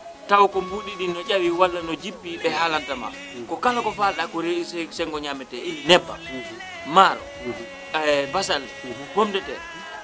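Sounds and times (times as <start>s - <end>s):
faint background music: 0.0s - 10.0s
man talking: 0.3s - 9.8s.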